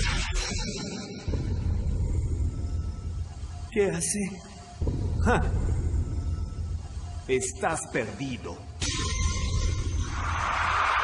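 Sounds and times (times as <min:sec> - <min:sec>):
background music: 0:00.0 - 0:11.0
heavy low rumble: 0:04.8 - 0:07.4.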